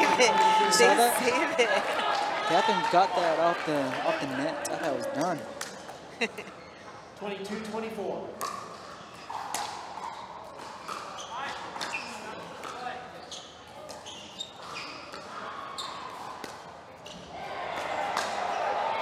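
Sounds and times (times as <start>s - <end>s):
crowd voices: 0.0s - 7.1s.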